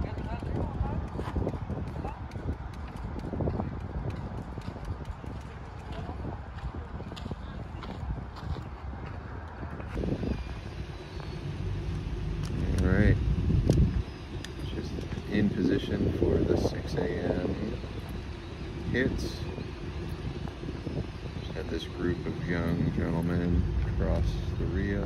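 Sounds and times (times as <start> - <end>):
group of people talking: 0.0 - 2.4
steady low rumble: 0.0 - 25.0.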